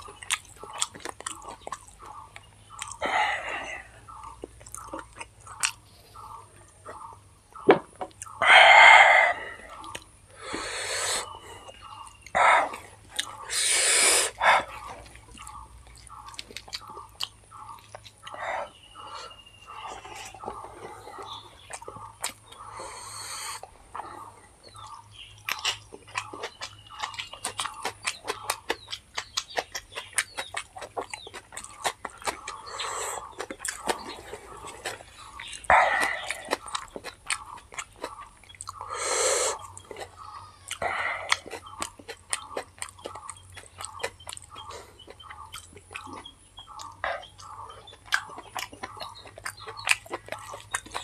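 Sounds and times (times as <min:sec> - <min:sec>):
mouth chewing: 0:00.0 - 0:07.2, 0:08.0 - 0:51.0.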